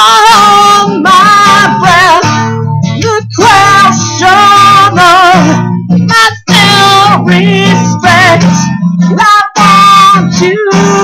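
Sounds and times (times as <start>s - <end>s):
man singing loudly: 0.0s - 2.3s, 3.0s - 5.6s, 9.2s - 11.0s
strummed acoustic guitar: 0.0s - 11.0s.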